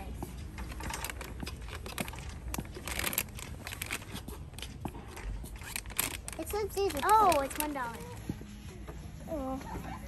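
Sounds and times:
plastic wrapper crackling: 5.6s - 8.1s.

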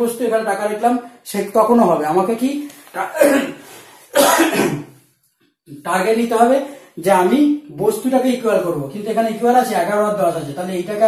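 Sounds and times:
man coughing: 3.0s - 5.0s.

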